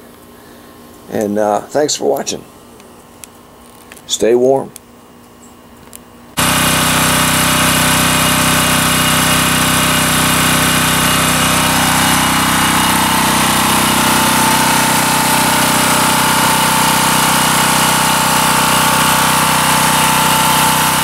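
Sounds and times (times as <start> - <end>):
generator engine running: 6.3 - 21.0.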